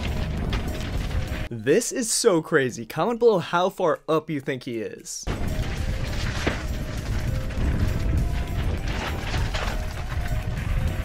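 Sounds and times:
bike rattling over rough ground: 0:00.0 - 0:01.5, 0:05.3 - 0:11.0
continuous low rumble: 0:00.0 - 0:01.5, 0:05.3 - 0:11.0
tyres crunching over gravel: 0:00.0 - 0:01.5, 0:05.3 - 0:11.0.

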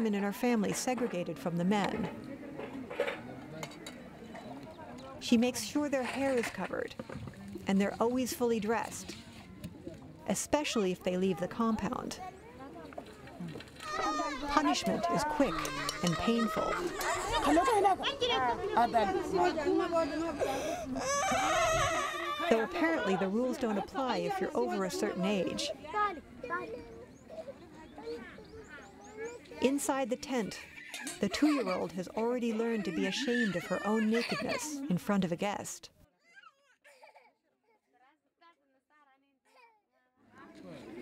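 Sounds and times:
people talking and chattering: 0:00.0 - 0:35.9, 0:40.3 - 0:41.0
toddler crying faintly: 0:13.4 - 0:18.9.

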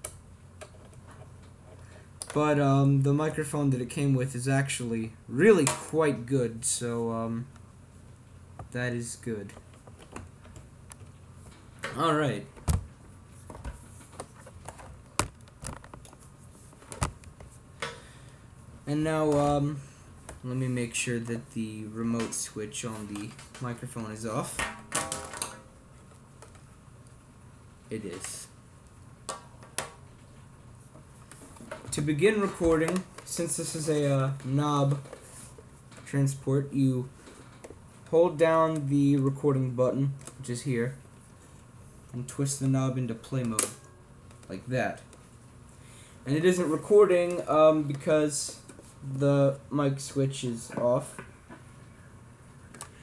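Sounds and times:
low hiss: 0:00.0 - 0:14.3, 0:15.0 - 0:53.0
plastic microphone handling: 0:12.6 - 0:17.6.

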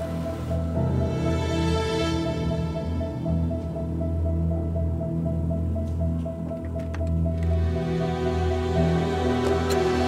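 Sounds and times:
low sustained drone: 0:07.4 - 0:10.0.

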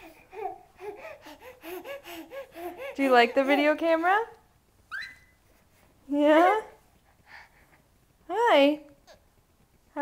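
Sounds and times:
baby gasping: 0:00.0 - 0:03.5.

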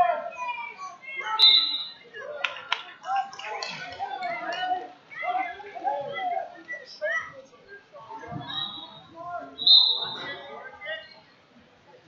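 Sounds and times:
people calling out and talking: 0:00.0 - 0:12.0
sharp hand claps: 0:02.4 - 0:04.7.

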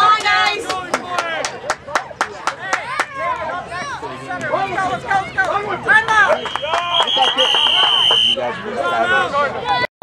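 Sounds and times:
sharp hand claps: 0:06.1 - 0:08.3.

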